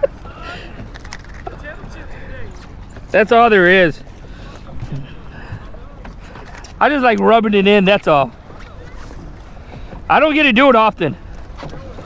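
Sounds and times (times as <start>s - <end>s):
water around a boat: 0.0s - 12.0s
wind: 0.0s - 12.0s.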